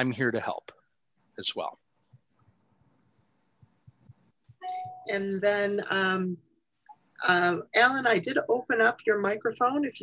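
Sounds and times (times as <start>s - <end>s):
short electronic chime: 4.6s - 5.2s.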